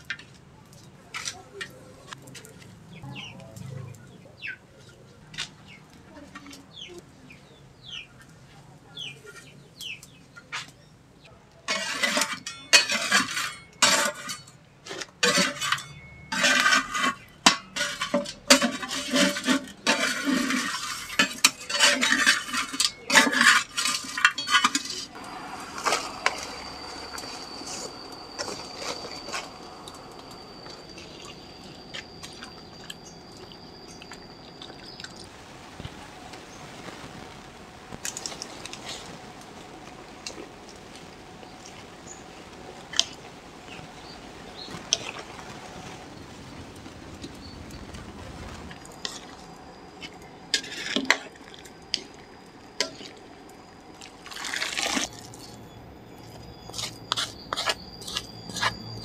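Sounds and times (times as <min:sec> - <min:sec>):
spatula scraping clay wok: 0:11.7 - 0:35.2, 0:47.4 - 0:53.2, 0:54.2 - 0:59.0
thin high whistle: 0:25.2 - 0:35.3, 0:55.0 - 0:59.0
steady hiss: 0:34.5 - 0:53.7.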